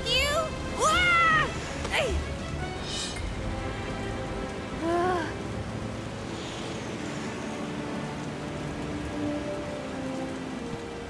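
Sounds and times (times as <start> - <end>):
soft background music: 0.0 - 11.0
steady rain: 0.0 - 11.0.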